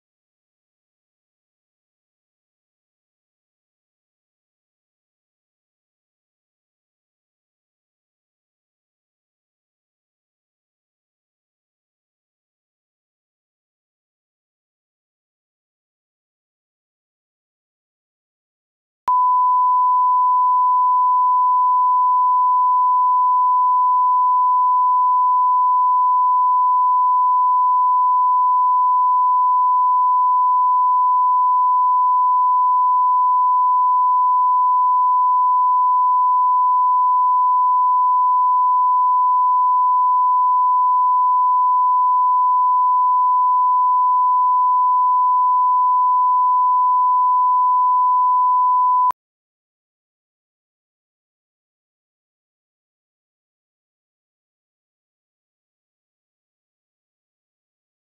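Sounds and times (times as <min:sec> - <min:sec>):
steady test tone beep: 0:19.1 - 0:49.2.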